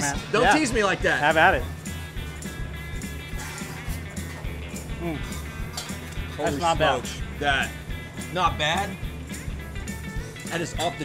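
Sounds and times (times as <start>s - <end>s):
background music with low beat: 0.0s - 11.0s
man humming approval: 4.9s - 5.3s.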